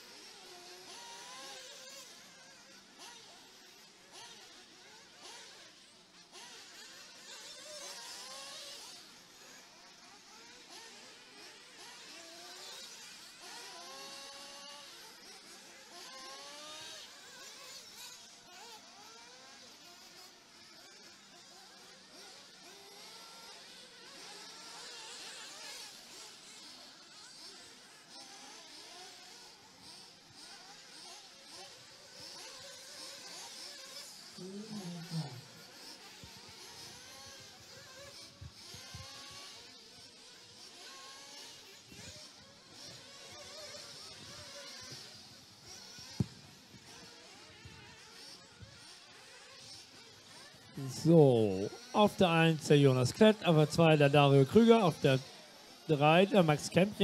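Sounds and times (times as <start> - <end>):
distant rc buggy motors buzzing: 0.0 - 57.0.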